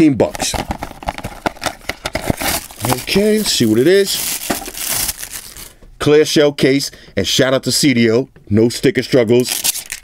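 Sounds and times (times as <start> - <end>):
cardboard box being opened: 0.4 - 5.4.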